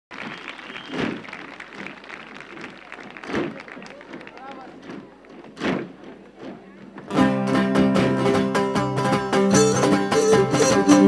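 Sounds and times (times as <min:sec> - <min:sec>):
audience applauding: 0:00.1 - 0:05.6.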